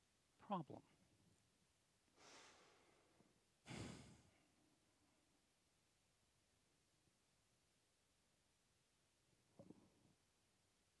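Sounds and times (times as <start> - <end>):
exhale into microphone: 2.2 - 3.1, 3.7 - 4.3.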